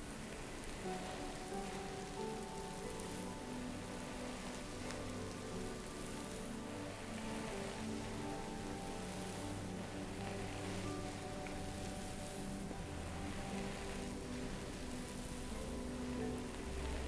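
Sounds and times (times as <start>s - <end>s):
calm spa music: 0.0s - 17.0s
steady rain: 0.0s - 17.0s.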